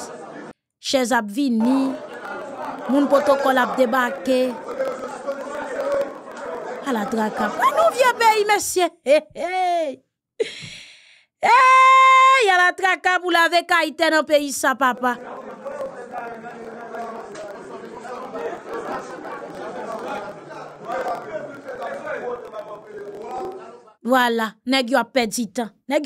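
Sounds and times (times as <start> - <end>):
crowd chatter in large room: 0.0 - 0.6, 1.6 - 8.6, 14.6 - 24.0.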